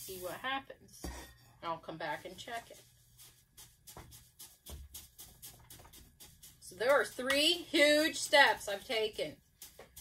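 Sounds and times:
stick tapping and scraping wet material: 2.3 - 10.0.

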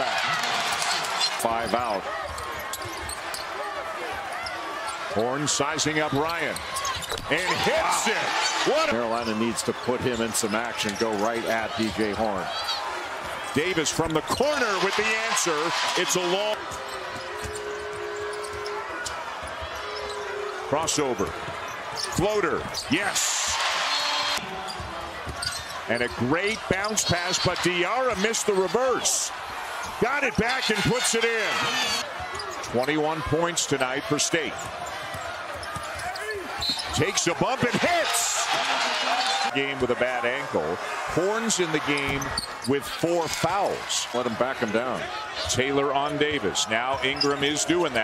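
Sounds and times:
arena crowd murmur: 0.0 - 48.0.

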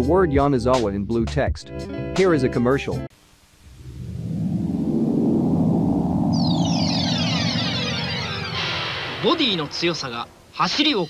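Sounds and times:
rumbling whoosh: 3.6 - 8.9
falling high-pitched sweeps: 3.7 - 9.4.

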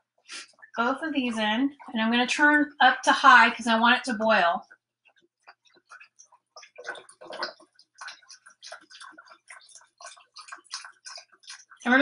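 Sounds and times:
liquid glugging and splashing: 0.0 - 12.0.

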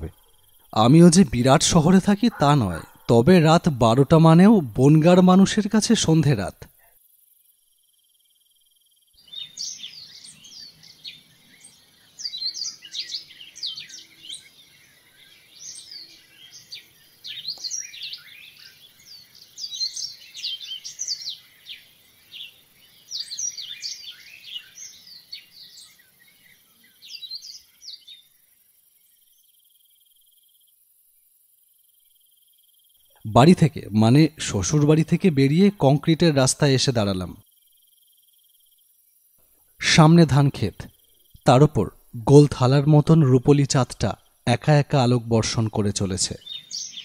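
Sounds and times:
high chirping calls: 0.0 - 6.9, 9.2 - 28.4, 33.0 - 37.4, 39.8 - 47.0.

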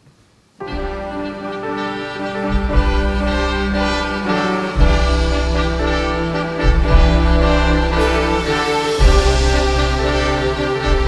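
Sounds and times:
orchestra playing a fanfare: 0.6 - 11.0.

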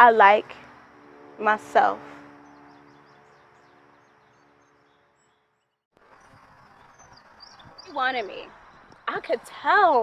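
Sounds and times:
faint birds chirping: 0.2 - 10.0.

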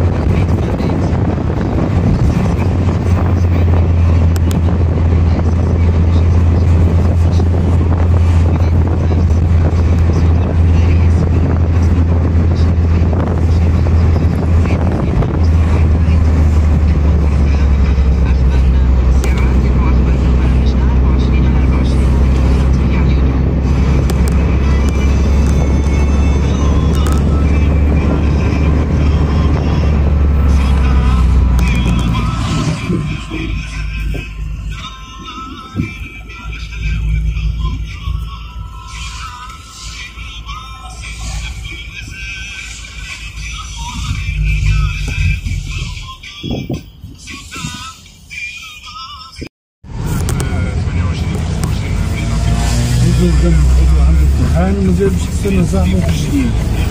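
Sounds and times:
car road and engine rumble: 0.0 - 56.9.

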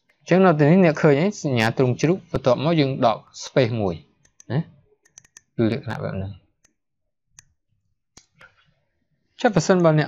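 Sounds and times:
person speaking: 0.3 - 6.6
computer mouse clicks: 4.2 - 5.6.

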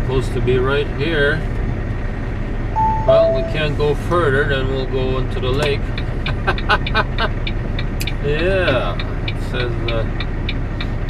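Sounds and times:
truck diesel engine rumbling: 0.0 - 11.0.

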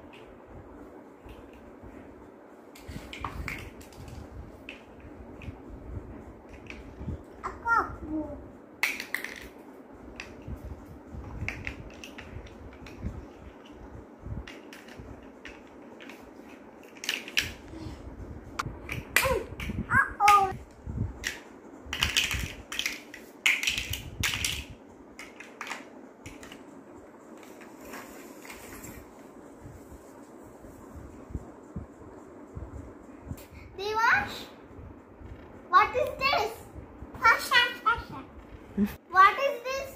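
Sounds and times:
plastic blocks clicking: 21.2 - 26.6.

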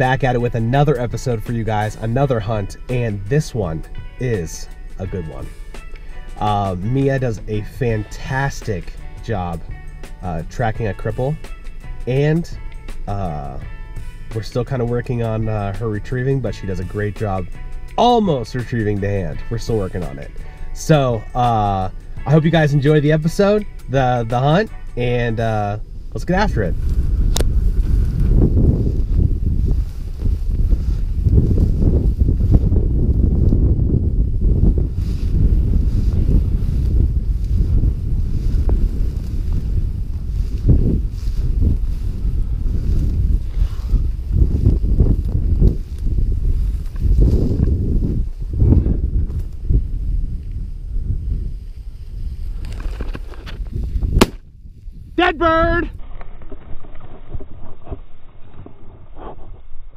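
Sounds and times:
dry grass brushing: 0.0 - 55.2
wind buffeting microphone: 0.0 - 59.9
shotgun shot: 54.2 - 54.4.

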